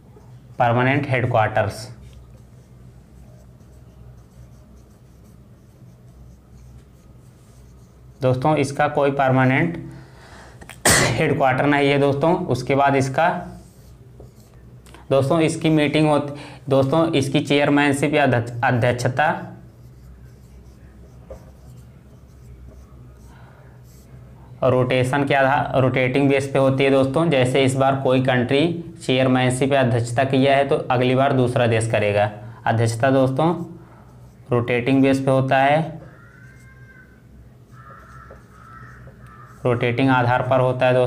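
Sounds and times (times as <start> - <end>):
marker writing on whiteboard: 1.8 - 8.8, 12.9 - 14.6, 19.4 - 24.2, 33.2 - 40.7.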